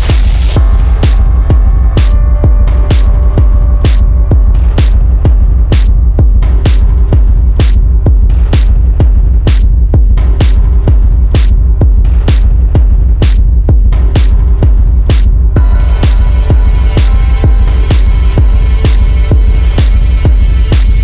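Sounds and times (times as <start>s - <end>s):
dark minimal techno: 0.0s - 21.0s.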